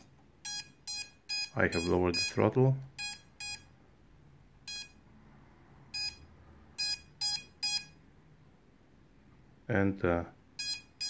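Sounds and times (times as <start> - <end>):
electronic motor beeps: 0.4 - 2.4, 3.0 - 3.7, 4.7 - 5.0, 5.9 - 8.0, 10.6 - 11.0.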